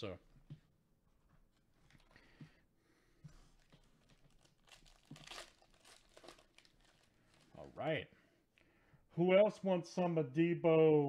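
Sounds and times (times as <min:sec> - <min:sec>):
foil wrapper tearing and crinkling: 0:04.0 - 0:07.6.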